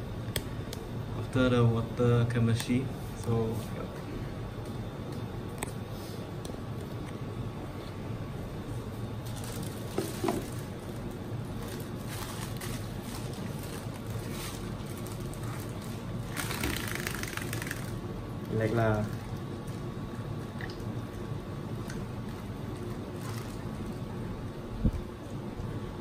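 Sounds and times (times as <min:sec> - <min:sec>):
aquarium pumps humming: 0:00.0 - 0:26.0.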